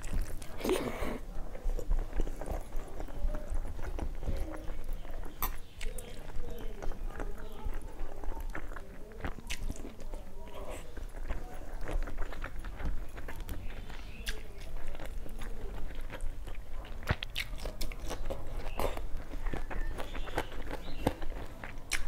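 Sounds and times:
person chewing wetly: 0.0 - 22.0.

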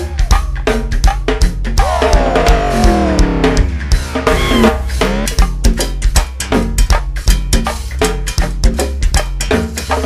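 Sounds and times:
drum kit beat: 0.0 - 10.0
steady low bass: 1.5 - 8.0.

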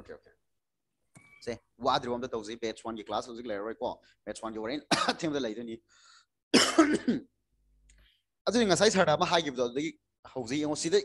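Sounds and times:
man clearing throat: 4.9 - 5.3, 6.5 - 7.3.

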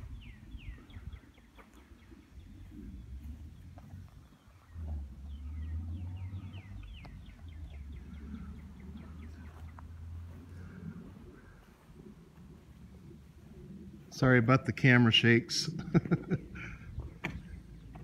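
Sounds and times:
low rumble: 0.0 - 14.2
birds chirping: 0.0 - 18.0.

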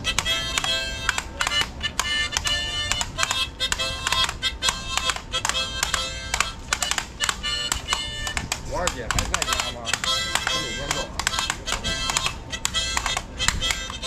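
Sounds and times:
harmonica playing rhythmic tune: 0.0 - 14.0.

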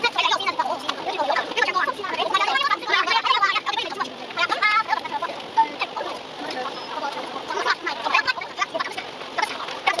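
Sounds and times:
sped-up high chattering voices: 0.0 - 10.0
steady running noise hiss: 0.0 - 10.0.

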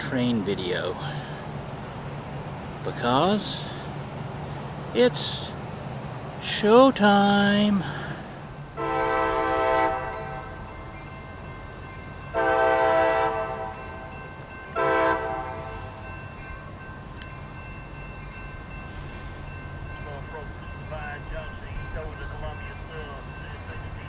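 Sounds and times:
locomotive air horn blasts: 8.8 - 10.7, 12.4 - 14.2, 14.8 - 16.0.

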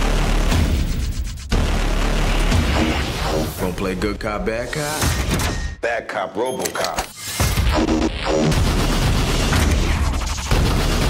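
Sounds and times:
action trailer music: 0.0 - 5.8, 7.2 - 11.0.

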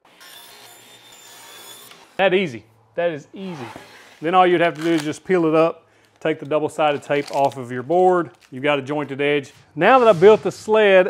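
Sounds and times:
table saw cutting with high whine: 0.0 - 2.2.

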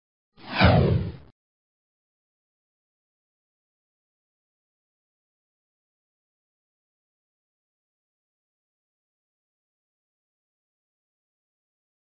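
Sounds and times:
downward whoosh: 0.4 - 1.3.

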